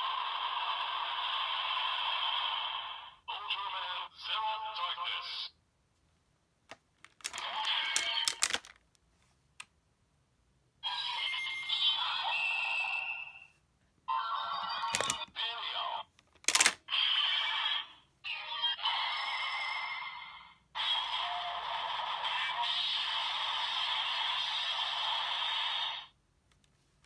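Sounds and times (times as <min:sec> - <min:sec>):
plastic clicks of toy mechanism: 0:07.0 - 0:08.9, 0:14.9 - 0:15.3, 0:16.2 - 0:16.9
toy electronic sound effects: 0:07.2 - 0:08.7, 0:10.8 - 0:13.5, 0:14.1 - 0:15.8, 0:16.5 - 0:26.1
toy voice call-outs: 0:07.2 - 0:08.7, 0:10.8 - 0:13.4, 0:14.1 - 0:16.1, 0:16.9 - 0:19.4.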